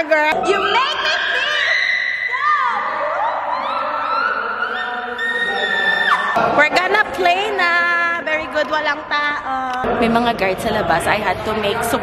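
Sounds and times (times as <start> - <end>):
people shouting and whooping: 0.3 - 6.6
long drawn-out cries: 0.6 - 6.4.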